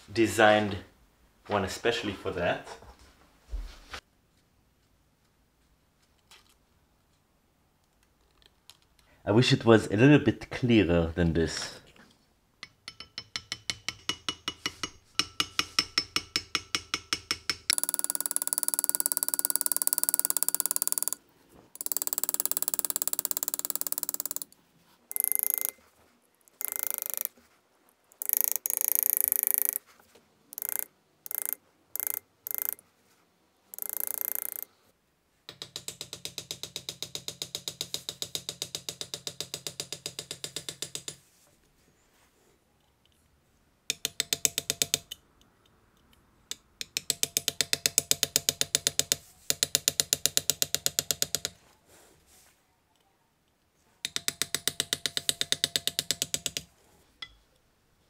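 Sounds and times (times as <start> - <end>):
rapid metallic tapping: 12.6 - 21.2, 21.8 - 25.8, 30.6 - 32.8, 54.1 - 57.4.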